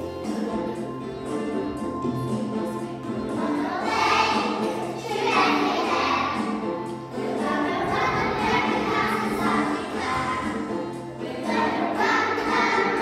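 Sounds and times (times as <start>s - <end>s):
musical accompaniment: 0.0s - 13.0s
children singing: 2.2s - 13.0s.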